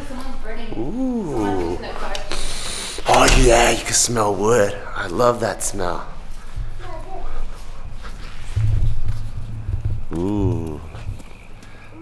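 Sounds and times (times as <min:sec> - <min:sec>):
low microphone rumble: 0:08.4 - 0:11.6
short wavering voice: 0:10.1 - 0:11.1.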